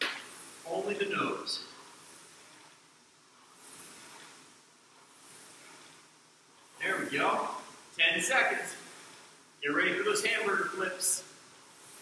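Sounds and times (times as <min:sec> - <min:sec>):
rowing machine fan whooshing: 0:00.0 - 0:12.0.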